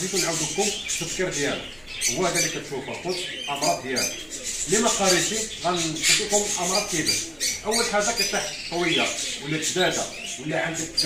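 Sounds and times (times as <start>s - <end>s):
man talking: 0.0s - 11.0s
small birds chirping: 0.0s - 11.0s.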